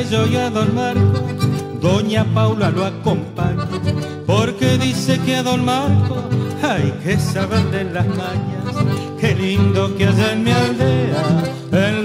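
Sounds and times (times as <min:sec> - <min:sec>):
strummed and plucked guitars: 0:00.0 - 0:12.0
sustained melody line: 0:00.0 - 0:12.0.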